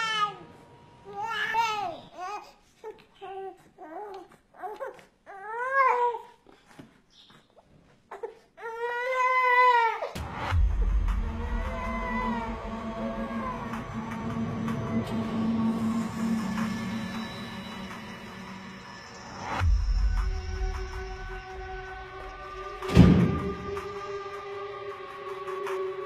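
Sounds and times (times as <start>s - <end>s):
baby crying: 1.1s - 6.4s, 8.1s - 13.8s
music with deep bass: 10.2s - 26.0s.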